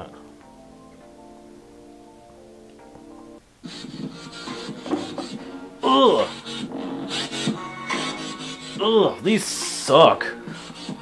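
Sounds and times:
thin music from small speakers: 0:00.0 - 0:11.0.

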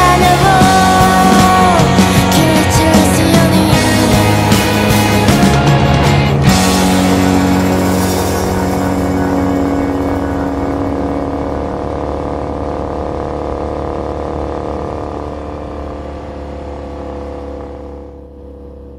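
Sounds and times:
motorcycle engine cruising: 0:00.0 - 0:18.9.

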